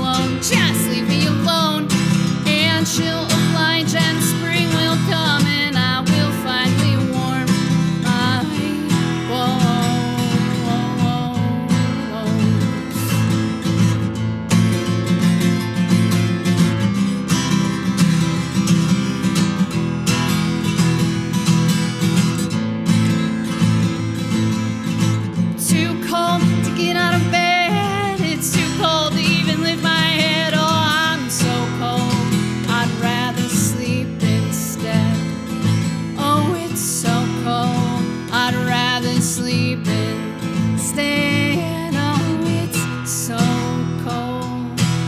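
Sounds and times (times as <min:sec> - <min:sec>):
acoustic guitar strumming: 0:00.0 - 0:45.0.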